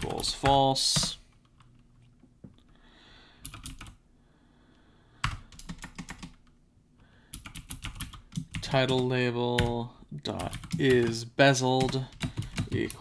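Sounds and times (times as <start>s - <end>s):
computer keyboard typing: 3.4s - 4.0s, 5.2s - 6.5s, 7.3s - 11.2s, 11.8s - 13.0s.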